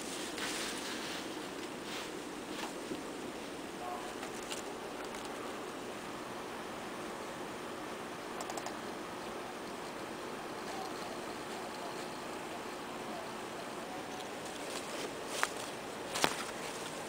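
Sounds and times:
background hiss: 0.0 - 17.0
computer mouse clicking: 4.2 - 5.4, 8.4 - 8.8.

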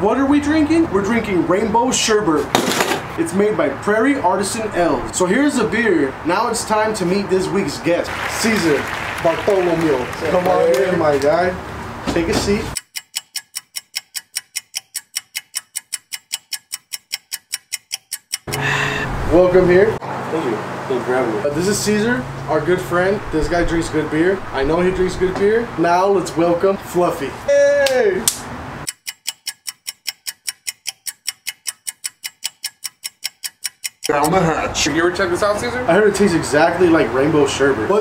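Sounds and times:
rapid sharp ticking: 12.8 - 18.9, 28.3 - 34.2.

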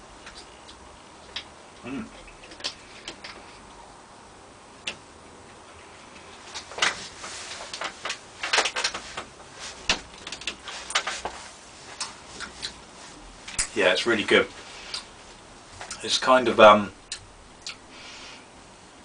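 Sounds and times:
mouth smacks and clicks: 0.2 - 3.6, 14.9 - 15.1, 17.0 - 17.9.

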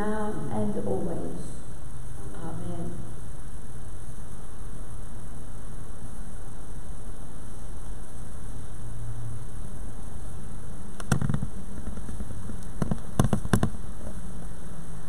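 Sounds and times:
background hiss and low hum: 0.0 - 15.0.

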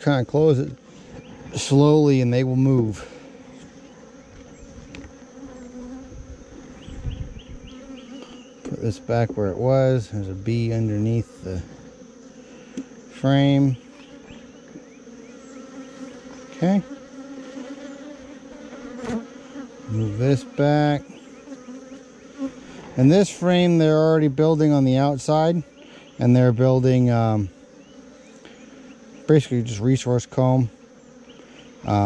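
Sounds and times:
honeybees buzzing: 0.0 - 32.0.

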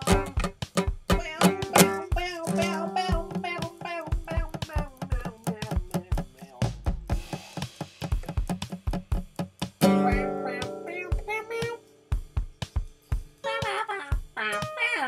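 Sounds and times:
acoustic band song: 0.0 - 6.3, 9.8 - 11.8.

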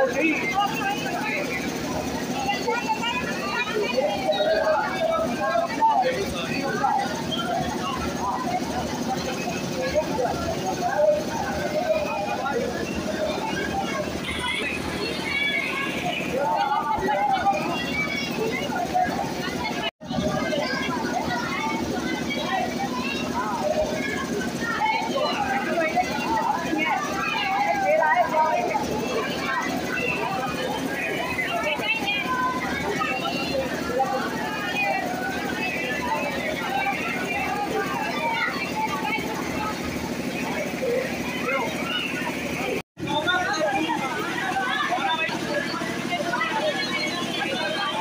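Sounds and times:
women's voices overlapping: 7.8 - 48.0.

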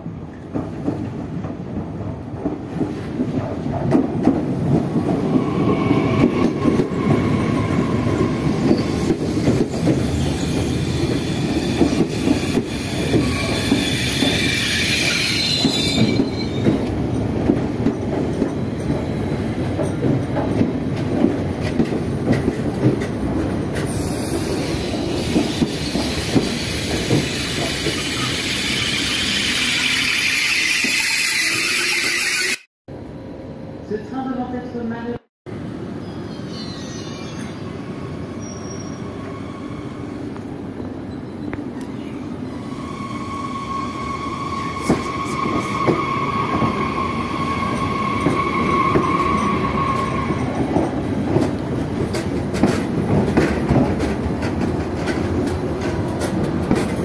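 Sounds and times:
train rumble: 0.0 - 29.9, 37.3 - 57.0
train wheels squealing: 5.3 - 16.9, 23.9 - 32.7, 36.0 - 50.9.

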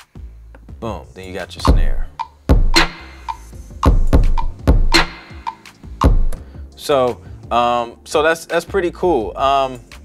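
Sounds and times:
sampled kick and snare drums: 1.6 - 6.4.

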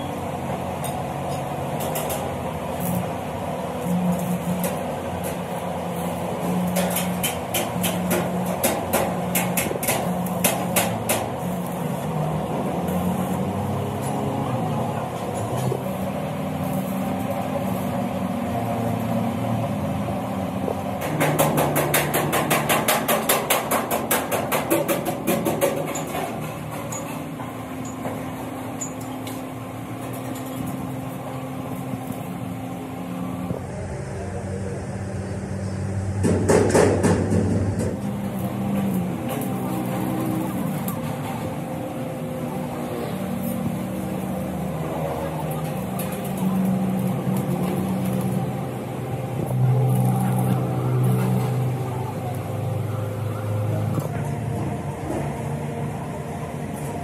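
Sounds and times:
hammer strikes on steel: 6.4 - 11.7, 21.0 - 27.1, 36.2 - 41.2
machine hum: 25.7 - 57.0.

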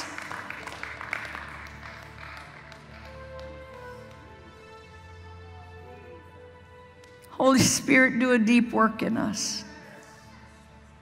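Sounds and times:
people clapping: 0.0 - 4.7
soft background music: 0.0 - 11.0.

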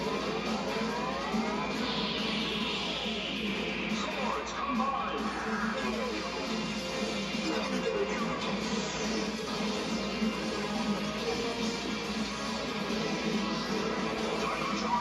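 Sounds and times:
action soundtrack music: 0.0 - 15.0.

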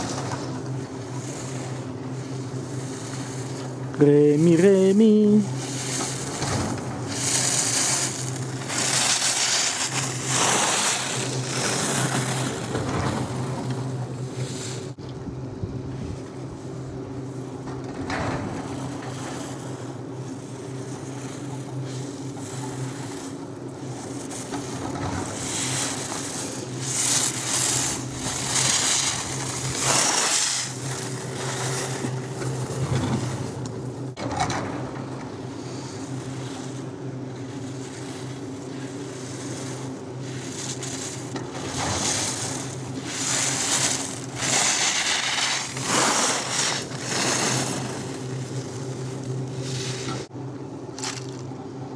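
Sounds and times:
skis scraping on snow: 0.0 - 15.0, 20.6 - 33.6, 35.6 - 50.3
low mechanical hum: 0.0 - 51.9.

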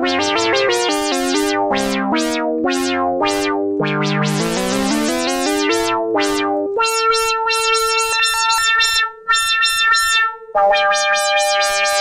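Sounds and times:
synthesizer repeating notes: 0.0 - 12.0.

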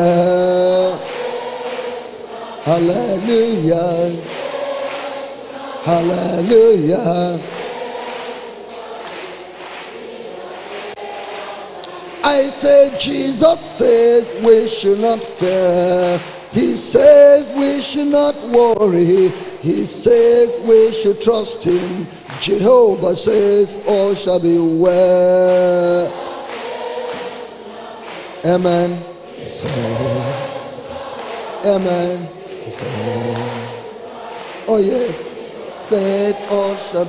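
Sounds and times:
congregation singing: 0.0 - 37.0.

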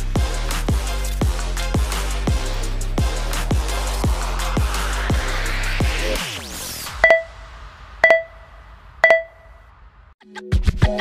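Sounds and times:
short electronic timer beeps: 7.0 - 9.6.

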